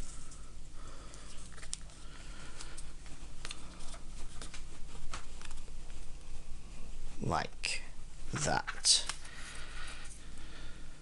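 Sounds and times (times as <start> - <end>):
paper folding and crinkling: 1.3 - 6.3.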